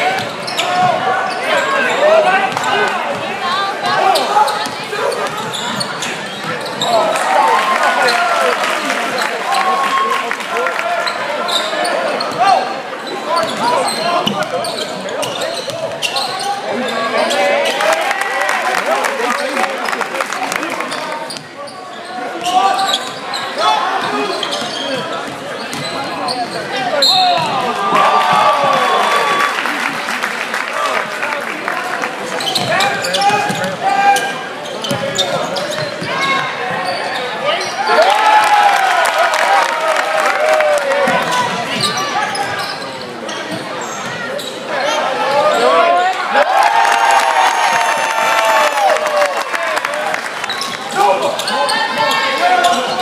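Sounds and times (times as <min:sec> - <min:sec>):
sneakers squeaking: 0:00.0 - 0:07.2, 0:11.0 - 0:17.8, 0:20.8 - 0:28.9, 0:32.3 - 0:37.9, 0:41.1 - 0:45.9, 0:50.4 - 0:53.0.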